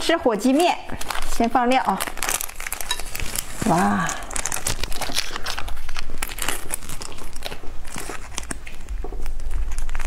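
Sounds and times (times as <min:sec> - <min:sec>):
plastic sachets crinkling: 0:00.0 - 0:10.0.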